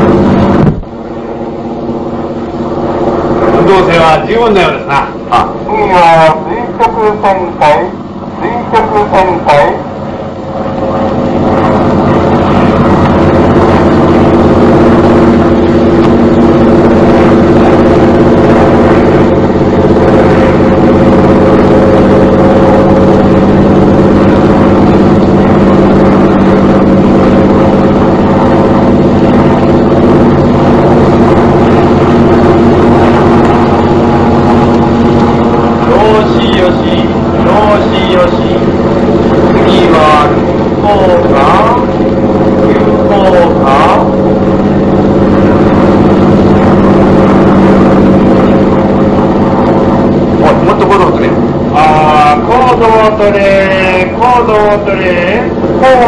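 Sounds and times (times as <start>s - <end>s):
propeller plane engine droning: 0.0s - 56.0s.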